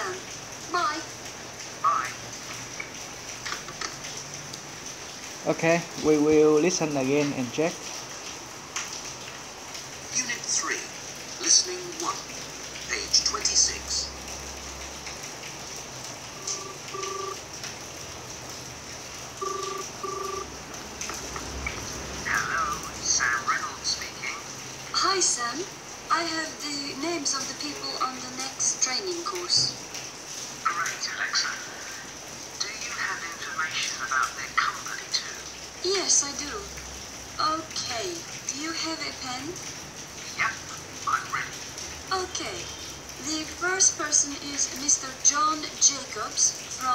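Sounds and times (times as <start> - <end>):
faint steady hiss: 0.0 - 46.9
telephone ringing tone: 16.3 - 17.5, 19.4 - 20.6.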